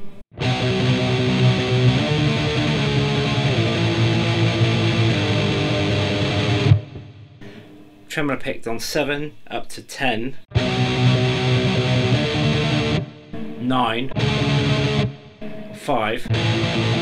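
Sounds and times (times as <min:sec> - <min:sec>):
distorted electric guitar power chords: 0:00.3 - 0:08.0, 0:10.5 - 0:17.0.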